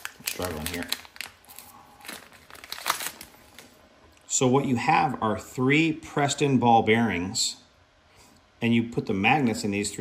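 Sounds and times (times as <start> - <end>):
plastic bag crinkling: 0.0 - 3.8.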